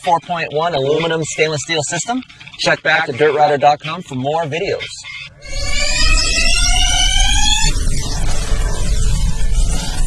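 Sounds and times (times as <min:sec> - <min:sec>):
crackling rumble: 0:04.7 - 0:10.0
deep rumble: 0:05.2 - 0:10.0
buzzy tone rising in pitch: 0:05.3 - 0:10.0.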